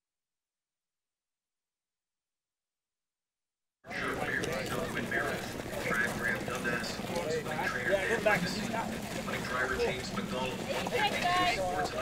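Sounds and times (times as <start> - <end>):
people talking indistinctly: 3.9 - 12.0.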